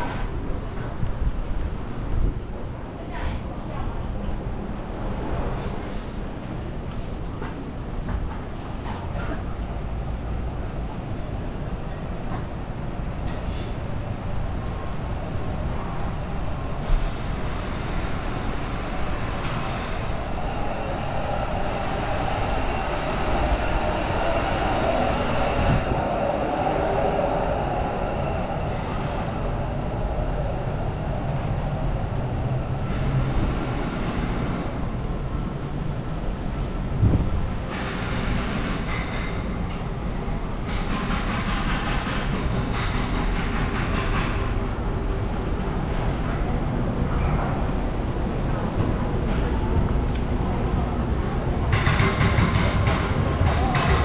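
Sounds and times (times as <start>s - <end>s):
city street ambience: 0.0s - 54.0s.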